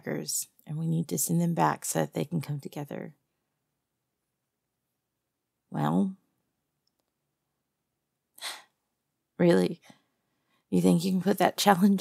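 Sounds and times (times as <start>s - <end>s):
woman speaking: 0.0s - 3.2s, 5.7s - 6.2s, 8.4s - 8.6s, 9.4s - 9.9s, 10.7s - 12.0s.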